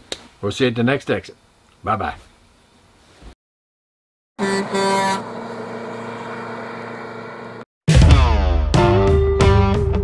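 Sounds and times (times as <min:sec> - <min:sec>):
vehicle horn beep: 0:04.4 - 0:05.8
vehicle engine hum: 0:04.4 - 0:07.6.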